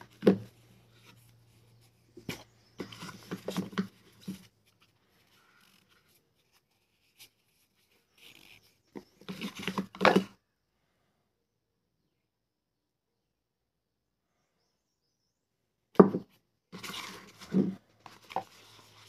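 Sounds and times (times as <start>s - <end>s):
rustling and rubbing in card box: 0.0s - 10.0s, 16.8s - 19.0s.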